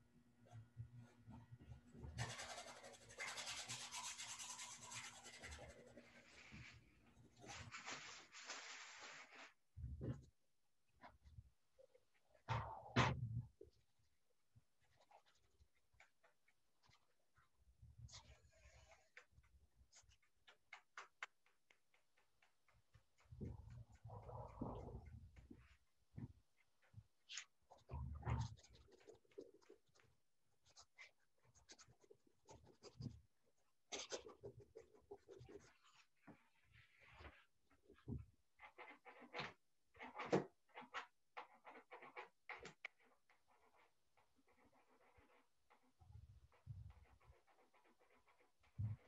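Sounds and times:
paintbrush scrubbing on canvas: 0:01.9 - 0:09.6.

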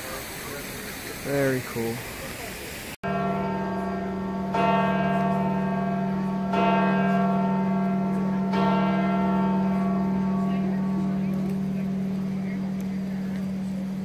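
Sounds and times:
church bell tolling: 0:03.0 - 0:14.0.

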